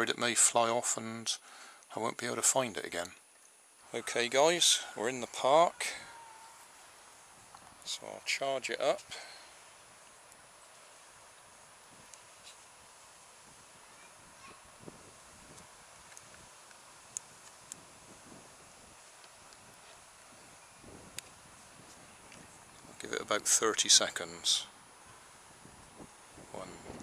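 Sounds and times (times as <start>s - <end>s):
outdoor background hiss: 0.0s - 27.0s.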